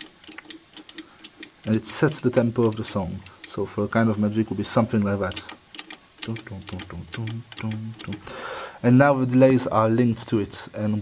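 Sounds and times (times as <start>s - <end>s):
footswitch clicking: 0.0s - 3.6s, 5.0s - 8.2s.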